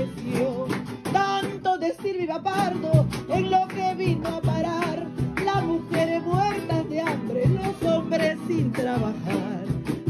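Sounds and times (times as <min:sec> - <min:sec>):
acoustic guitars strumming: 0:00.0 - 0:10.0.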